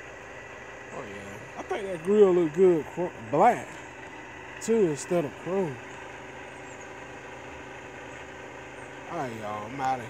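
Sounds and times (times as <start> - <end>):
faint constant tones: 0.0 - 10.0
steady mechanical hum: 0.0 - 10.0.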